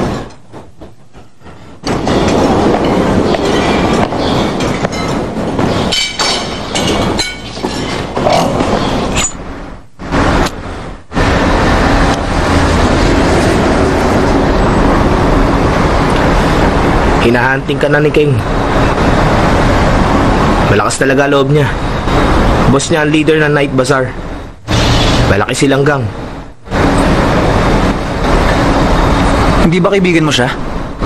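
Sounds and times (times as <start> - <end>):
loud continuous rumbling: 0.0 - 31.0.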